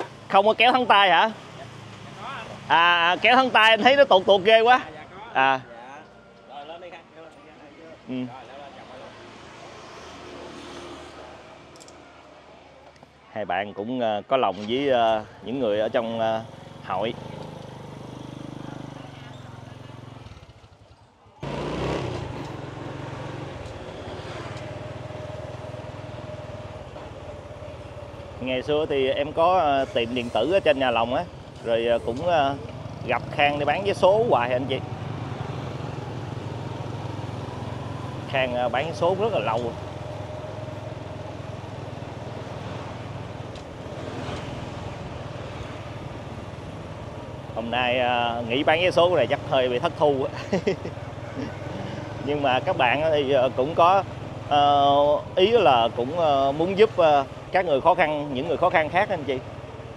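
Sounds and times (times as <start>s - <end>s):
road and wind noise: 0.0s - 59.9s
motorbike engine running: 16.0s - 44.0s.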